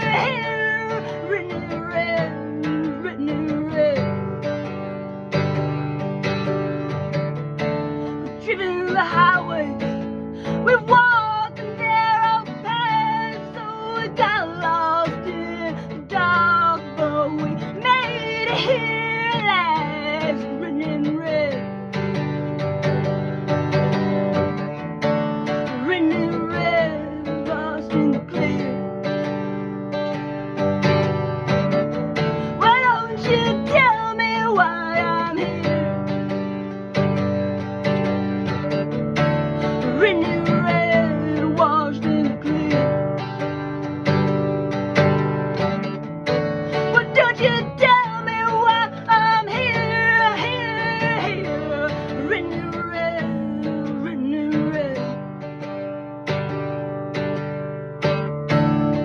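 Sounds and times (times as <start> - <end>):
person singing: 0.0 - 4.4, 8.0 - 21.9, 25.5 - 29.3, 32.2 - 37.2, 39.3 - 44.4, 46.3 - 55.3
acoustic guitar strumming: 0.0 - 59.0.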